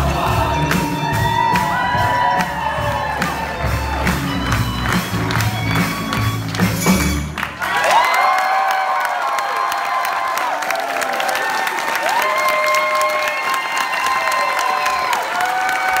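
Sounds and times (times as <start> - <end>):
audience applauding and cheering: 0.0 - 16.0.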